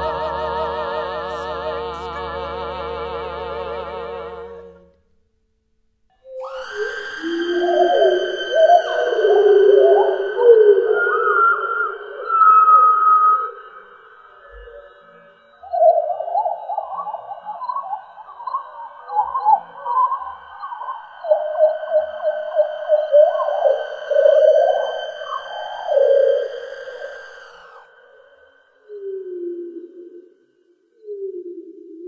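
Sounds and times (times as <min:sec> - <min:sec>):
high held tones: 0:06.2 - 0:17.2
electronically manipulated scream: 0:06.2 - 0:28.7
low sliding whale-like tones: 0:06.2 - 0:30.2.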